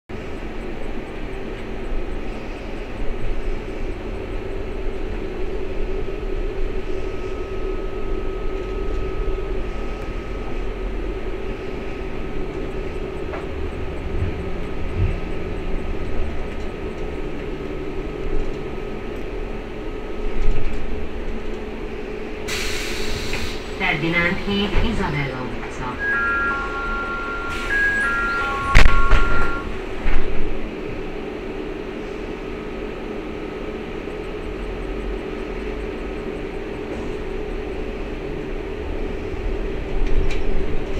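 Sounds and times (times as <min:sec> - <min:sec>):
electric hum and whine: 0:00.1 - 0:40.9
road rumble: 0:00.1 - 0:40.9.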